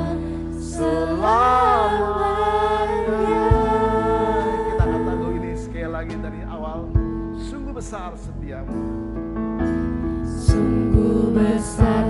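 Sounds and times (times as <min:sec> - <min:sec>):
voices singing a worship song: 0:00.0 - 0:06.0, 0:10.2 - 0:12.0.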